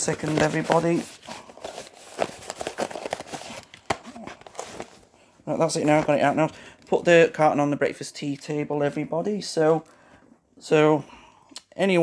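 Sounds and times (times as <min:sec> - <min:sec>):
packaging rustling and crinkling: 0:00.0 - 0:07.0.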